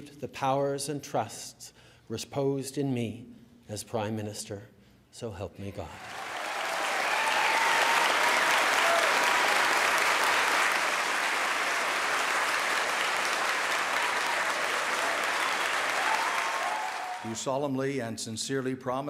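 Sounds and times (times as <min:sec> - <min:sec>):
large audience applauding: 0:06.0 - 0:17.4.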